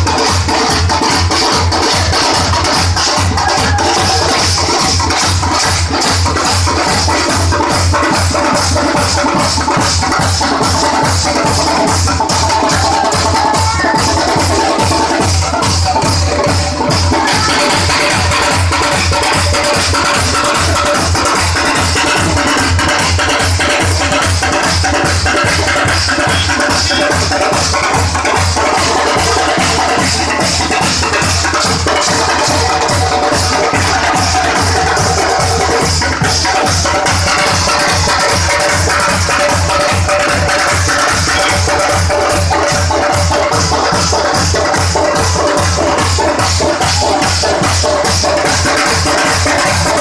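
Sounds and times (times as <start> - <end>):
dance drumming: 0.0 - 50.0.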